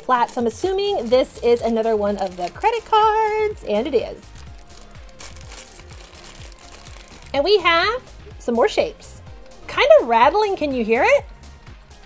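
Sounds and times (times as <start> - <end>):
foil packet crinkling: 0.0 - 7.5
background music with low beat: 0.0 - 12.0.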